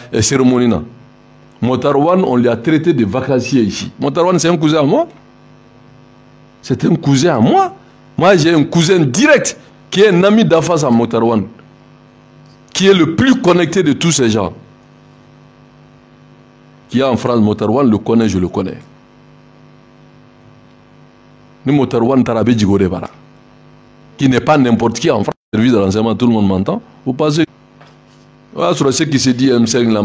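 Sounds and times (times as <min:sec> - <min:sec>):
man speaking: 0:00.0 - 0:01.0, 0:01.6 - 0:05.2, 0:06.6 - 0:11.6, 0:12.7 - 0:14.7, 0:16.9 - 0:18.9, 0:21.6 - 0:23.2, 0:24.2 - 0:27.5, 0:28.5 - 0:30.0
faint electrical hum: 0:00.0 - 0:30.0.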